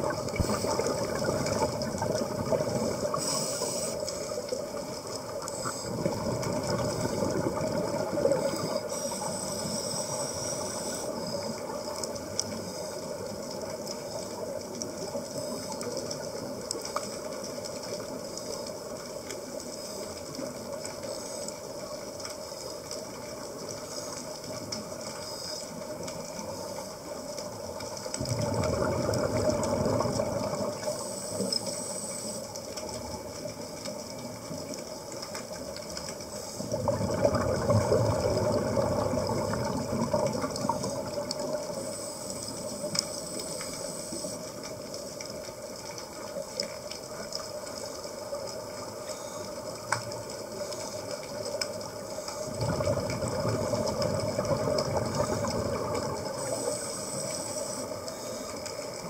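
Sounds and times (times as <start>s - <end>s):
scuba exhaust bubbles: 0.0s - 59.0s
underwater hiss and rushing: 0.0s - 59.0s.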